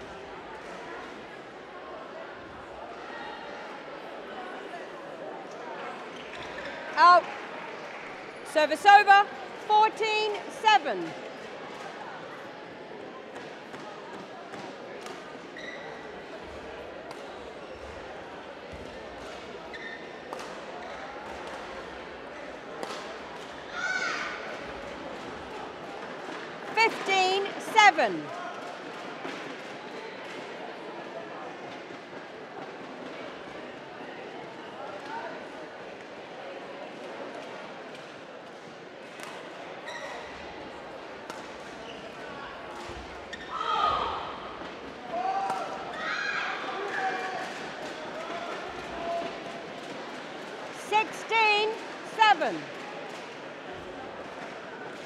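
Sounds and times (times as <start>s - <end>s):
shoes squeaking on court floor: 15.4s - 16.6s, 19.6s - 21.1s, 39.8s - 40.4s, 41.7s - 42.3s, 42.9s - 43.6s.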